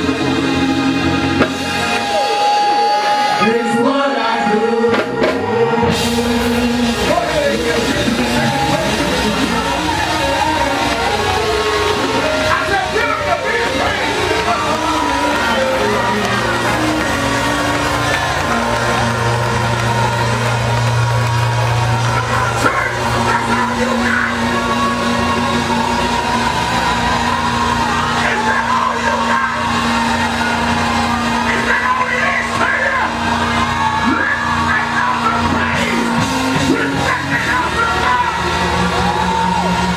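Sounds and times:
congregation shouting and whooping: 0.0 - 39.9
gospel band playing: 0.0 - 39.9.

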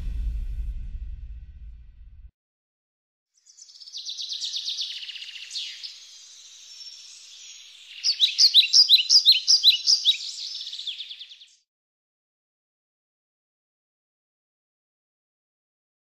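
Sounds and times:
songbird chirping trills: 3.4 - 11.6.

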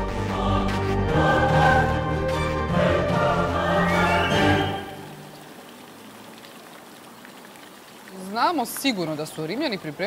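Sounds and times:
fountain water splashing: 3.5 - 10.0.

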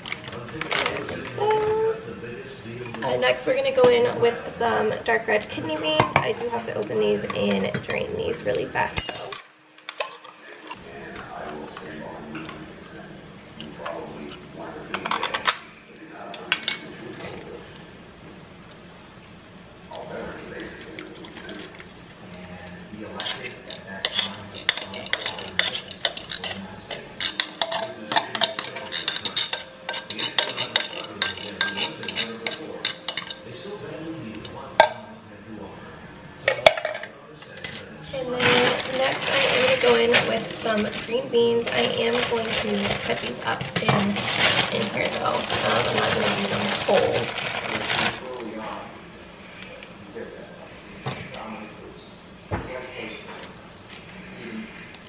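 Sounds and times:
metal cans clinking and scraping: 38.2 - 48.4.

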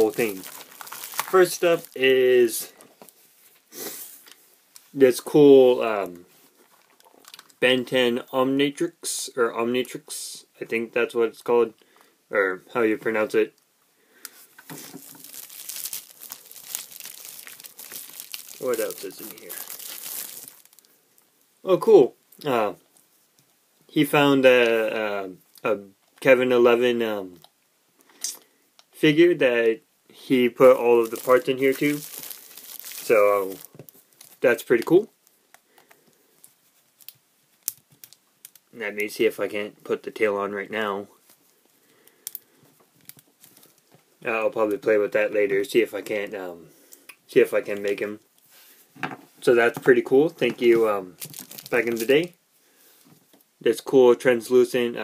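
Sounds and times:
packaging crinkling: 0.0 - 3.6, 6.6 - 7.6, 14.6 - 21.0, 30.6 - 38.7, 42.2 - 43.9, 50.5 - 52.3.

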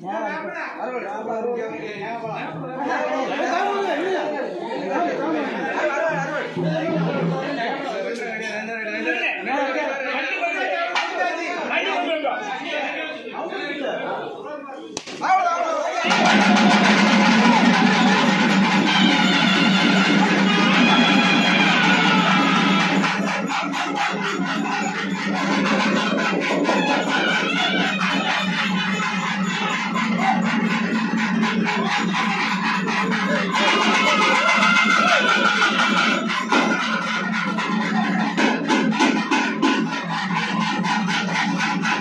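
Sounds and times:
fast dense drumming: 16.0 - 42.0.

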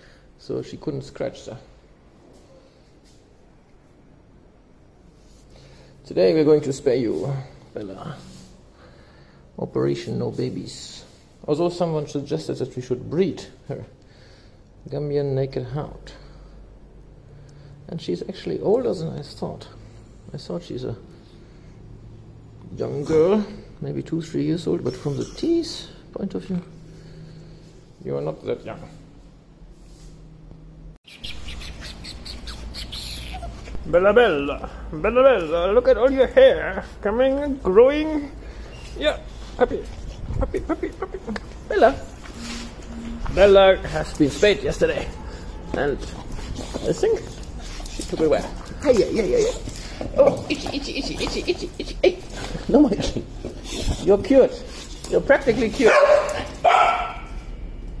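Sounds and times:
small birds chirping: 31.0 - 33.8
dog barking: 55.8 - 57.5.

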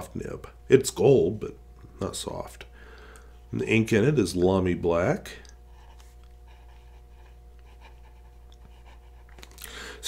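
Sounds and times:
steady low hum: 0.0 - 10.0
pen nib scratching on paper: 5.7 - 9.5
breath drawn: 9.3 - 10.0.

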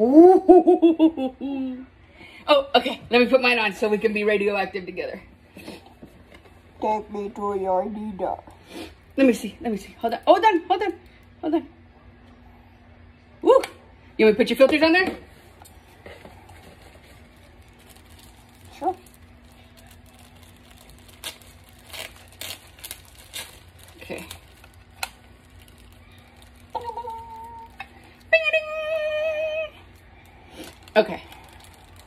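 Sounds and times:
clicks and rustles of mask parts: 15.6 - 28.3
person humming: 26.7 - 27.9.

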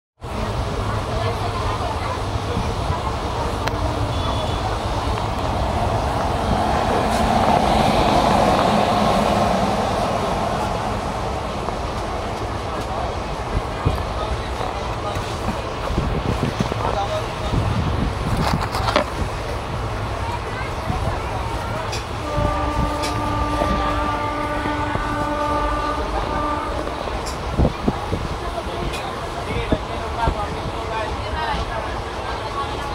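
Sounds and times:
train wheels rumbling on rails: 0.2 - 32.9
train horn blast: 22.2 - 27.3.

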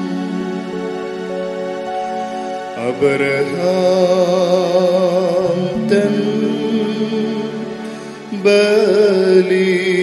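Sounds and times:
held instrumental notes: 0.0 - 9.7
hymn singing: 0.0 - 10.0.

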